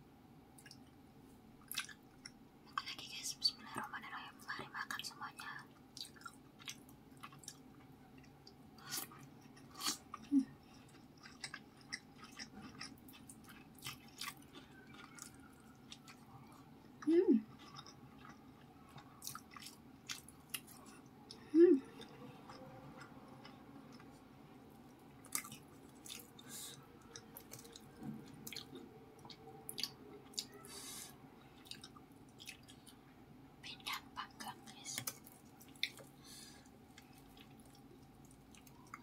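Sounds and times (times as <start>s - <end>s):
close chewing: 6.0s - 24.2s, 24.8s - 30.7s, 31.6s - 33.0s, 35.0s - 36.2s, 36.9s - 39.0s.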